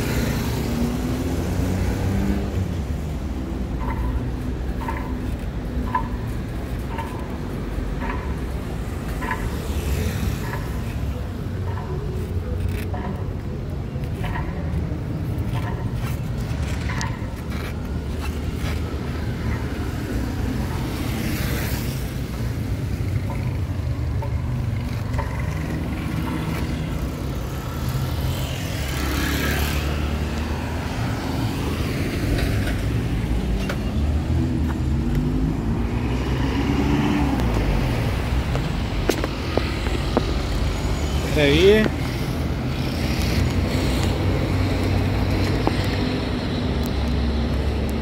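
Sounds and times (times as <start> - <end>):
road noise: 0.0 - 48.0
vehicle engine: 0.0 - 48.0.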